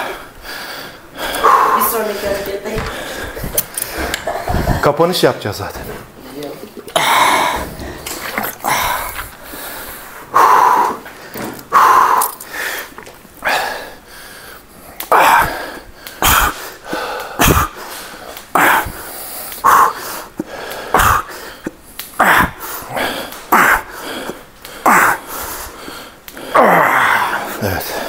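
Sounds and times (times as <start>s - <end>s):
man breathing forcefully: 0.0s - 5.0s, 7.0s - 28.0s.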